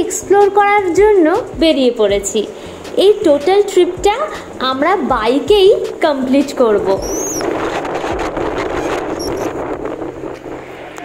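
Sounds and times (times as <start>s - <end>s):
wind rushing over microphone: 1.1s - 11.0s
motorcycle engine and road noise: 1.5s - 11.0s.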